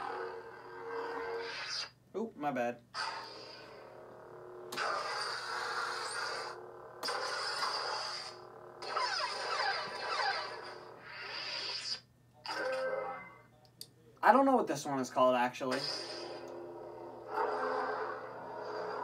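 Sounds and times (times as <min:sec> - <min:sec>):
electric lightsaber hum: 0:00.0 - 0:13.8, 0:15.6 - 0:19.0.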